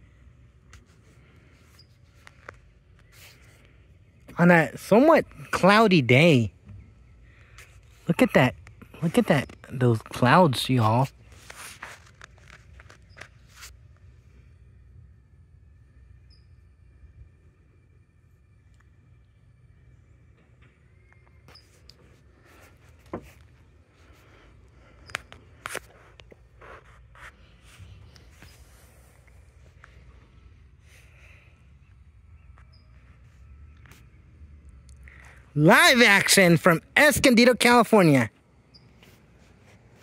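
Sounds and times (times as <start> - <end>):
low steady rumble: 11.1 - 35.6.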